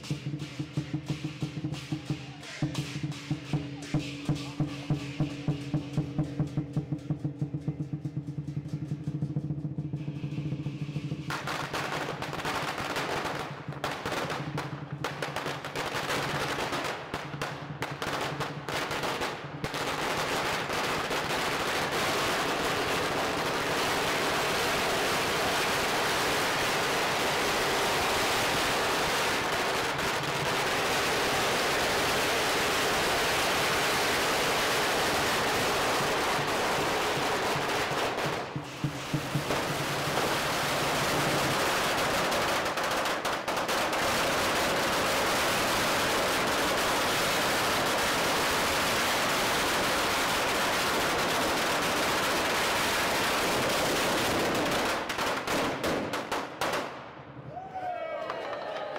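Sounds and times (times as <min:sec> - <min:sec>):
firecrackers crackling: 0:00.0 - 0:57.7.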